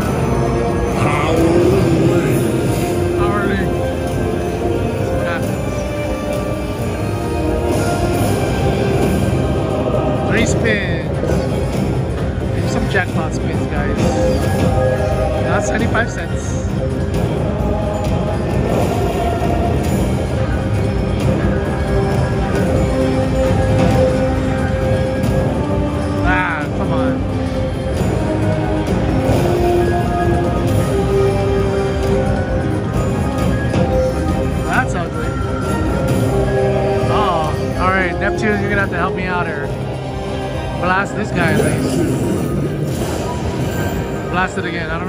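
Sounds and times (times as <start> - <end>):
slot machine bonus music: 0.0 - 45.0.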